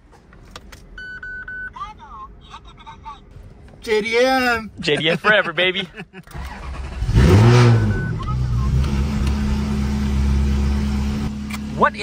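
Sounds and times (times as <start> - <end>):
car engine starting and revving: 6.2 - 12.0.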